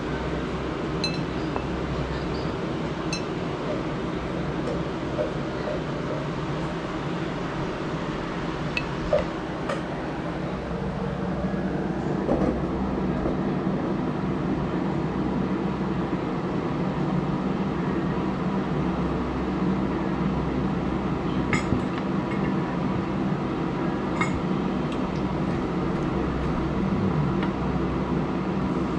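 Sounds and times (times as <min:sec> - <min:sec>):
low mechanical hum: 0:00.0 - 0:28.9.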